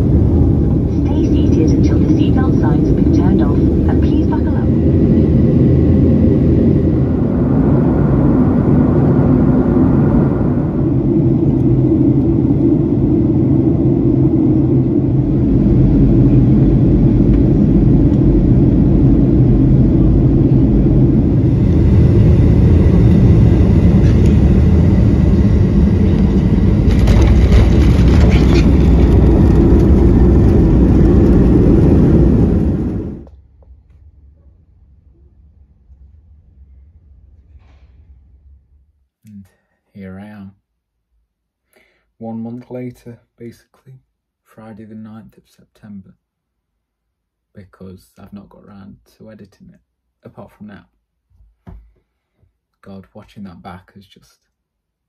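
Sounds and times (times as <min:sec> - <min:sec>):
jet engine rumble inside cabin: 0:00.0 - 0:38.8.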